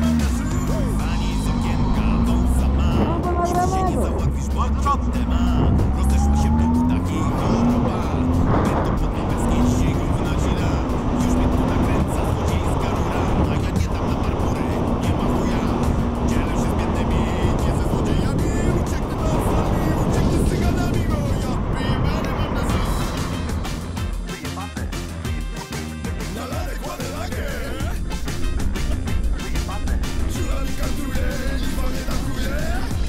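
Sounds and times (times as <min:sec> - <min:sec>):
motorcycle engine and road noise: 0:00.0 - 0:25.4, 0:26.0 - 0:33.0
background music: 0:00.0 - 0:33.0.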